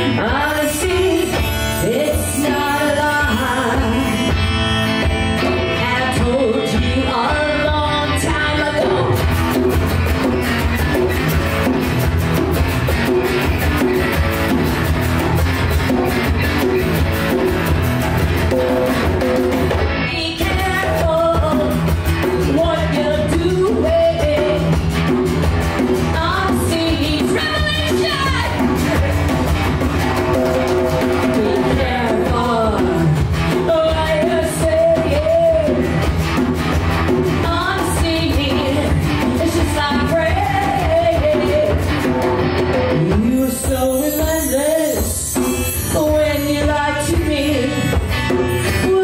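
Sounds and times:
electric and acoustic guitars: 0.0s - 49.0s
hand drum beat: 9.0s - 46.4s.

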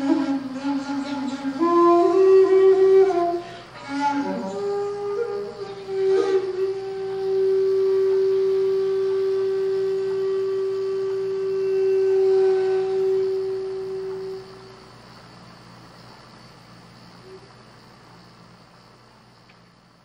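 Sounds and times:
bamboo flute low note: 0.0s - 14.8s
faint hiss: 0.0s - 20.0s.

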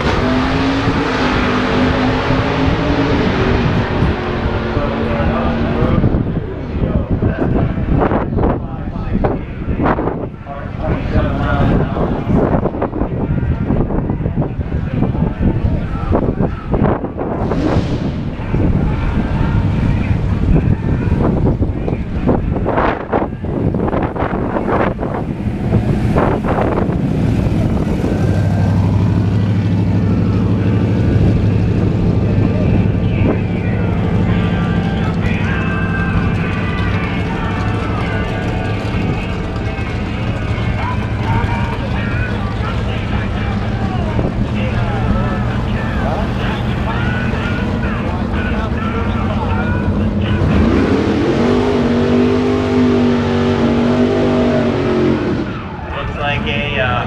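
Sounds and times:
background voices: 0.0s - 57.0s
car engines idling: 0.0s - 57.0s.

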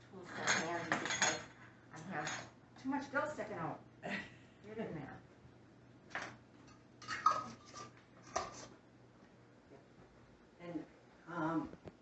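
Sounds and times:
glass jars scraping and knocking: 0.3s - 1.6s, 7.0s - 8.7s.

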